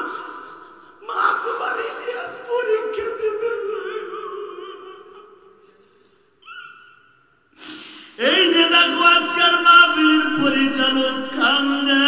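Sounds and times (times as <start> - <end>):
man preaching through microphone: 1.0 - 4.0, 8.2 - 12.0
sharp intake of breath: 7.6 - 8.2
chanted phrases: 8.3 - 12.0.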